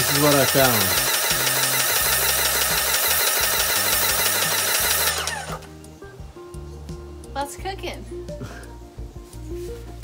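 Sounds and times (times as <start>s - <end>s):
paint spray gun hissing: 0.0s - 5.6s
background music: 0.0s - 10.0s.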